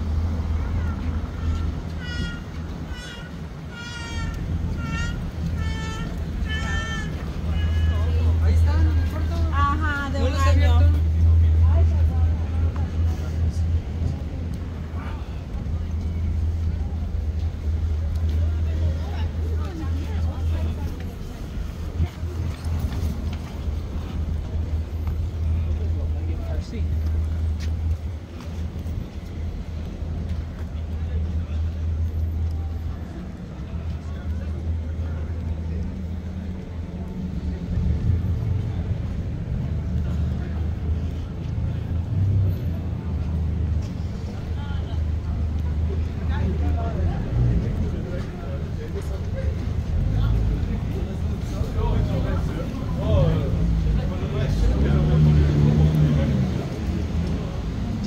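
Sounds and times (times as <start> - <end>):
low rumble of traffic: 0.0 - 58.0
passers-by talking: 0.0 - 58.0.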